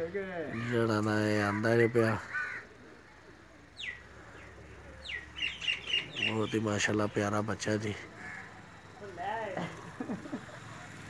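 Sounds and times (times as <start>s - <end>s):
bird calling: 0.0s - 11.0s
bird chirping: 0.5s - 11.0s.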